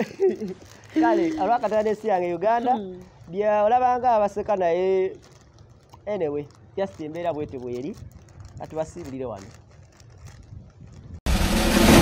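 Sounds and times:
faint outdoor background: 0.0s - 11.5s
deep bass hit: 11.3s - 12.0s
theme music stinger: 11.3s - 12.0s.

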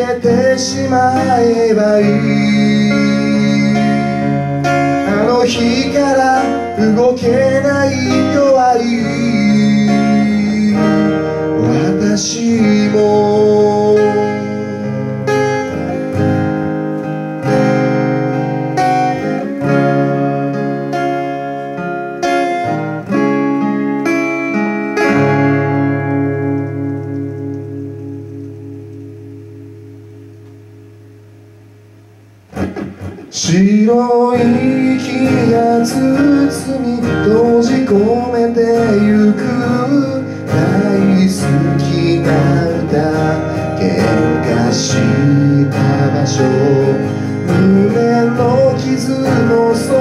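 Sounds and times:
person singing: 0.0s - 16.1s, 33.2s - 50.0s
acoustic guitar: 0.0s - 50.0s.

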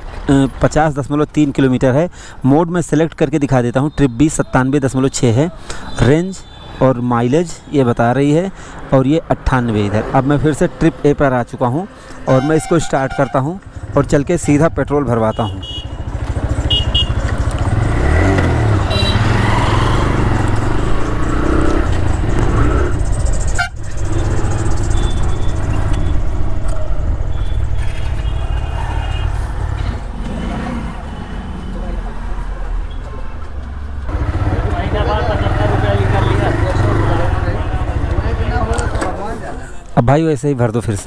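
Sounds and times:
motorcycle engine running: 15.6s - 28.4s, 34.1s - 38.8s
men's voices: 34.2s - 41.0s.

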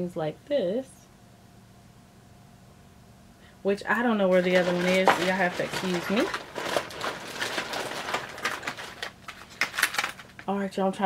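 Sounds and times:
hands rummaging small items: 4.3s - 10.5s.

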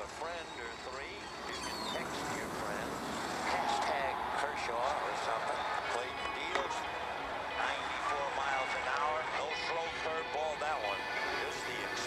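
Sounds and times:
sports commentary from a phone: 0.0s - 12.0s
steady background noise: 0.0s - 12.0s.

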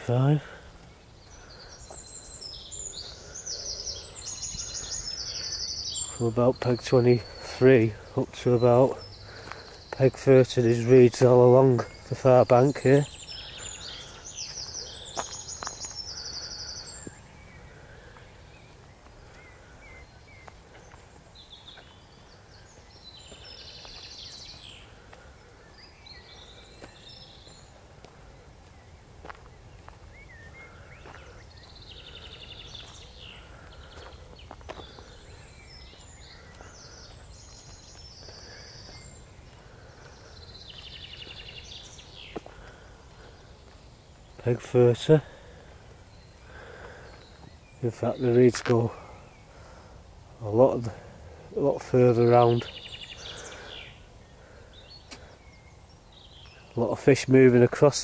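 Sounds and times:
small birds singing: 0.0s - 58.0s.

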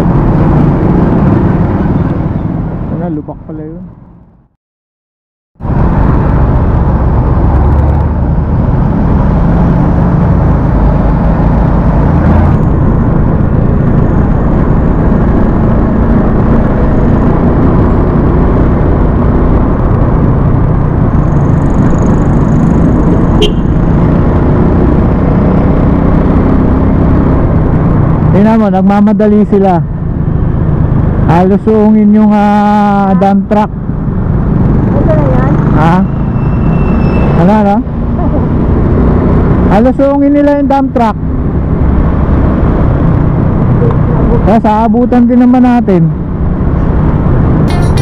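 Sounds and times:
wind noise on microphone: 0.0s - 3.0s, 5.6s - 48.0s
motorcycle engine rumble: 5.6s - 36.4s.

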